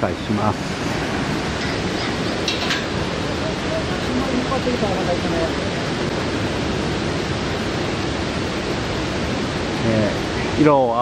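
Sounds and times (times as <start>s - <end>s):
river water rushing: 0.0s - 11.0s.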